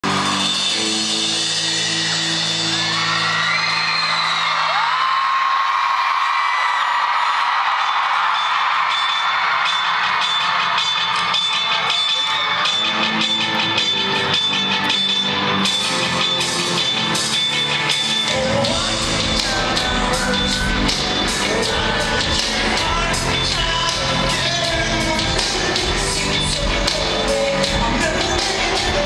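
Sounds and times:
crowd screaming and whooping: 0.0s - 29.0s
live rock band: 10.0s - 29.0s.

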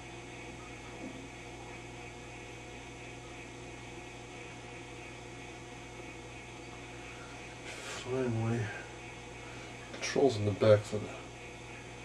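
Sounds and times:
television electrical hum: 0.0s - 12.0s.

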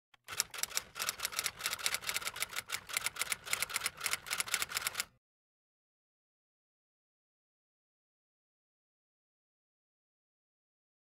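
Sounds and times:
fast key clicks typing: 0.2s - 5.1s.

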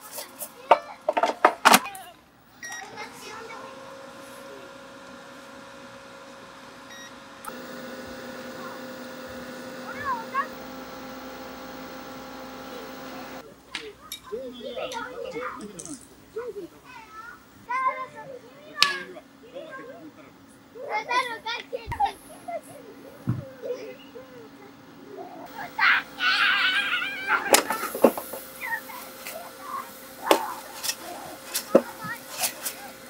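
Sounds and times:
air fryer fan humming: 0.0s - 13.6s, 25.5s - 33.0s
faint background hum: 0.0s - 33.0s
air fryer beep: 2.6s - 3.7s, 6.5s - 13.4s, 25.5s - 31.5s
air fryer click: 6.9s - 13.4s, 27.2s - 29.4s
children shouting at play: 8.4s - 15.8s, 16.4s - 33.0s.

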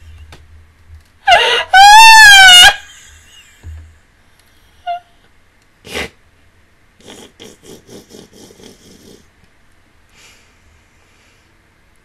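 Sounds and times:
woman squealing wail: 1.3s - 3.0s.

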